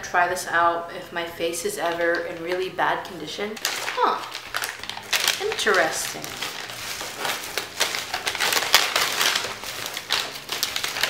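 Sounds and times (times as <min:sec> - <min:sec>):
packaging crinkling and rustling: 0:01.8 - 0:11.0.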